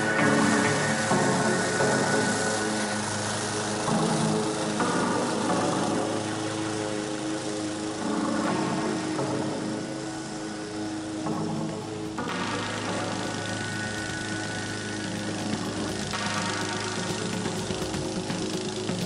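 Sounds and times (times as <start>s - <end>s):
background music: 0.0s - 19.0s.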